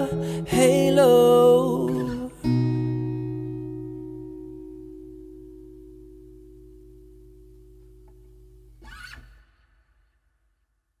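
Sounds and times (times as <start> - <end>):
acoustic guitar chord ringing: 0.0 - 8.8.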